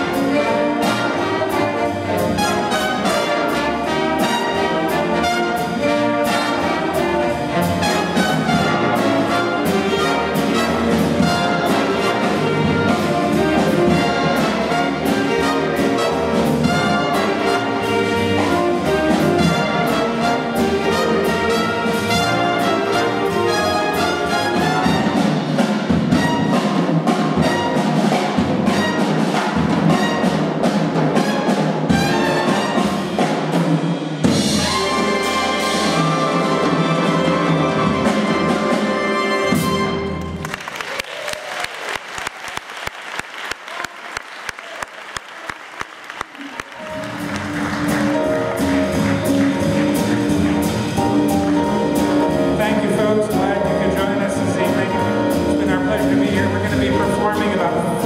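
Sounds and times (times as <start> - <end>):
saxophones and brass: 0.0 - 33.4, 34.2 - 40.4
piano: 0.0 - 41.7, 46.2 - 58.0
drums: 0.0 - 58.0
upright bass: 46.8 - 58.0.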